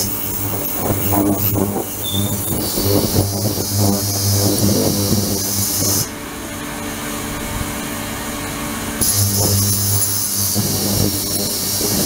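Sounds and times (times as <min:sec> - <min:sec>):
ultrasonic cleaner hum: 0:00.0 - 0:12.0.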